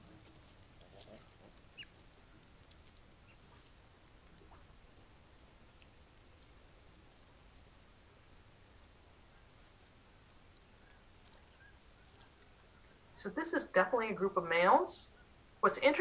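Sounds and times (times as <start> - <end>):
otter chirps and squeaks: 1.0 - 2.0.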